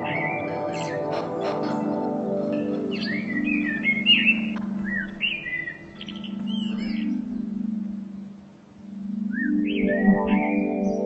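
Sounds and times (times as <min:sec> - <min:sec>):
birds singing whistled notes: 0:00.0 - 0:11.0
droning meditation music: 0:00.0 - 0:11.0.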